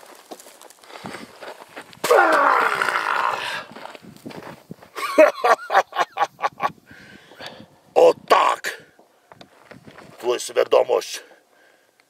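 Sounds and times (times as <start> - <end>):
man's roaring yell: 2.0 - 3.7.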